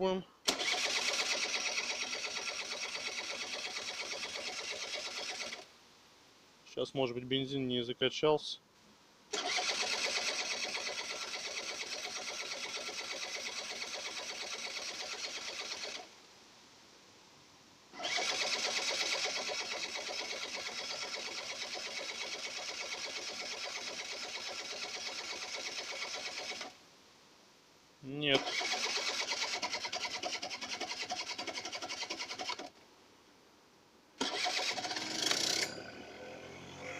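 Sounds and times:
scooter electric starter cranking: 0:00.5 - 0:05.7, 0:09.3 - 0:16.1, 0:18.0 - 0:26.8, 0:28.4 - 0:32.8, 0:34.2 - 0:36.1.

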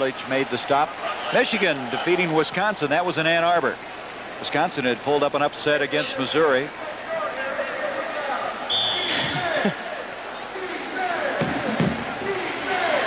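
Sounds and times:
voices calling out: 0:00.0 - 0:02.8, 0:05.6 - 0:13.0
stadium crowd murmur: 0:00.0 - 0:13.0
high whistle blast: 0:08.7 - 0:09.3.

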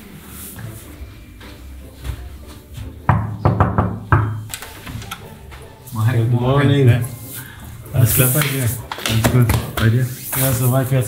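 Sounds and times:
fist knocking on wooden door: 0:03.1 - 0:04.4.

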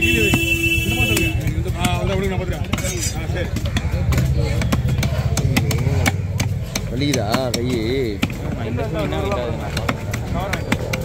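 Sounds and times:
knife striking wooden chopping block: 0:00.0 - 0:11.0.

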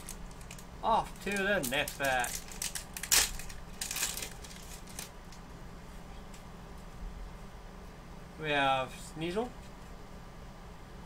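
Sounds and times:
foil wrapper crinkling and tearing: 0:00.0 - 0:05.2.

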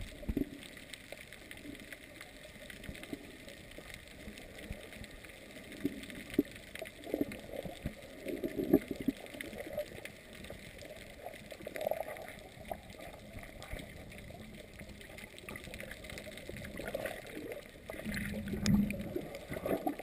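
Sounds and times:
water gurgles and thumps: 0:00.0 - 0:20.0.

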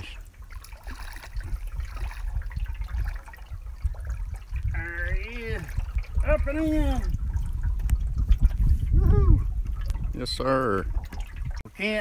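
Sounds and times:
water lapping around boat: 0:00.0 - 0:11.7
wind on microphone: 0:00.0 - 0:11.7.

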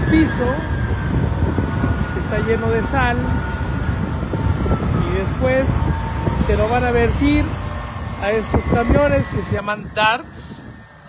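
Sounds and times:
diesel engine rumble: 0:00.0 - 0:11.0.

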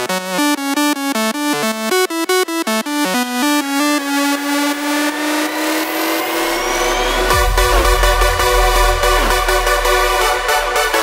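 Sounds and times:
high synth sweeps: 0:04.2 - 0:11.0
synth riser gliding upward: 0:04.2 - 0:11.0
deep bass swell: 0:05.1 - 0:11.0.

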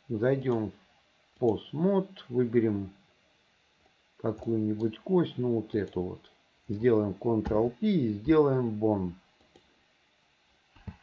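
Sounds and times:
man speaking: 0:00.1 - 0:00.8, 0:01.4 - 0:03.0, 0:04.2 - 0:09.2
computer mouse clicks: 0:09.4 - 0:09.7.

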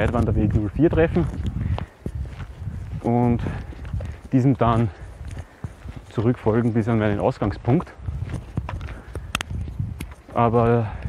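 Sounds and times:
footsteps on a trail: 0:00.0 - 0:11.0.

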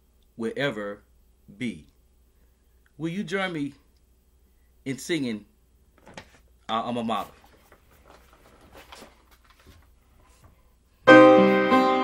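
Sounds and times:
paper handling: 0:06.0 - 0:06.5, 0:07.1 - 0:10.6
upright piano chord: 0:11.1 - 0:12.0.

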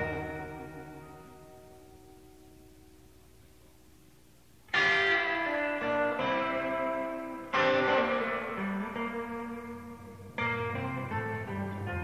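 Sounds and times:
sustained electric guitar notes: 0:00.0 - 0:02.7, 0:04.7 - 0:12.0
electric guitar chord ringing: 0:00.0 - 0:03.3, 0:04.7 - 0:12.0.

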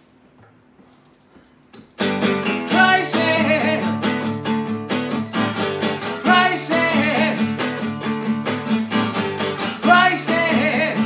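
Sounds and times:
acoustic guitar strummed chords: 0:02.0 - 0:11.0.

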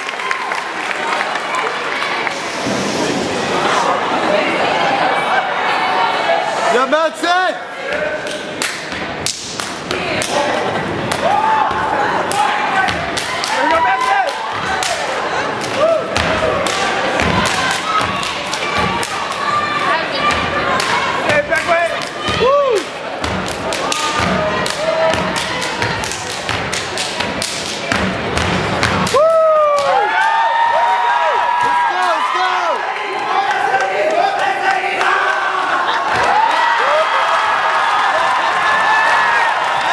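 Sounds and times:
hand claps: 0:08.2 - 0:10.4, 0:16.6 - 0:19.5, 0:23.4 - 0:28.1
stomps and claps: 0:08.2 - 0:19.5, 0:20.3 - 0:30.4.

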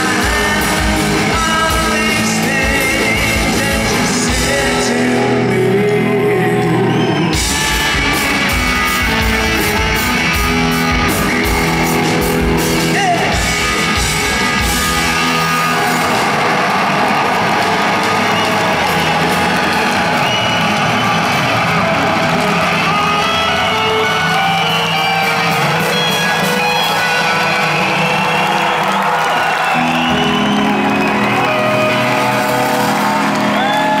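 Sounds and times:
crowd cheering and whooping: 0:00.0 - 0:34.0.

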